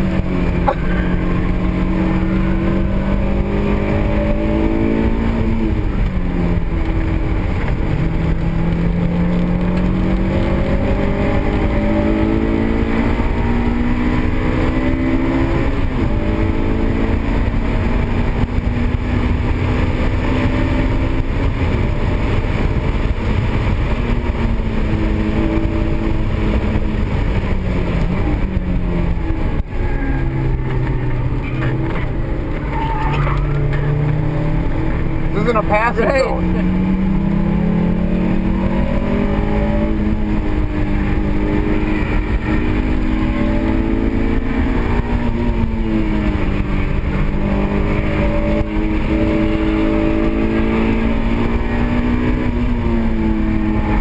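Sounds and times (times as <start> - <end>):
car engine revving: 0.0 - 54.0
road and wind noise: 0.0 - 54.0.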